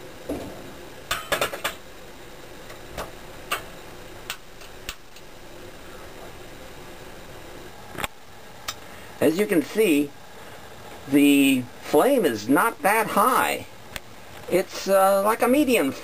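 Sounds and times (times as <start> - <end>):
faint background hiss: 0.0 - 16.0.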